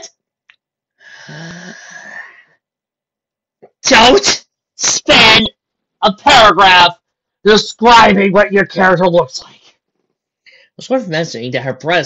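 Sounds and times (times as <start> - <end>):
person's breathy rasping vocal noise: 1.0 - 2.5.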